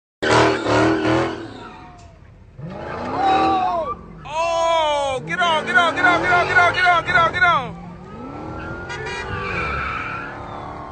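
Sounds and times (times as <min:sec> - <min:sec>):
car engine revving: 0:00.2 - 0:10.9
tyres squealing: 0:00.6 - 0:10.9.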